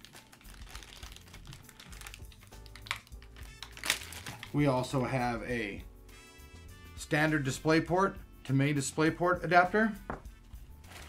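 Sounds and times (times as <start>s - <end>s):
plastic bags crinkling: 0.0s - 4.7s, 10.8s - 11.0s
quiet background music: 0.0s - 11.0s.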